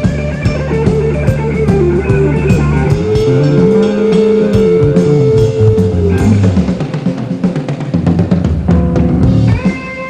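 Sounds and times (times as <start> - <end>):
electric guitar soloing: 0.0 - 7.1, 9.1 - 10.0
bass guitar: 0.0 - 7.5, 8.2 - 10.0
drums: 0.0 - 10.0.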